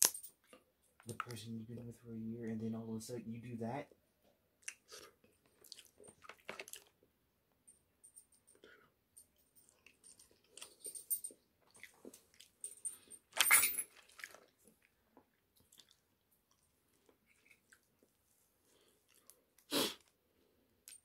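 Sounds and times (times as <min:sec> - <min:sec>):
chewing close to microphone: 0:04.6 - 0:07.0, 0:11.6 - 0:12.6, 0:13.9 - 0:18.1, 0:18.8 - 0:20.1.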